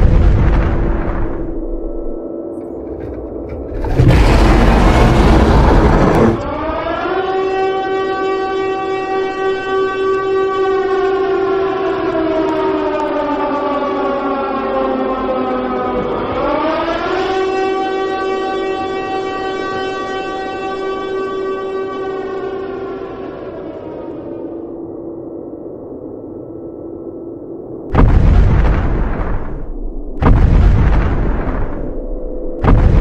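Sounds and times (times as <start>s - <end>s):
air-raid siren wailing: 0.8s - 27.9s.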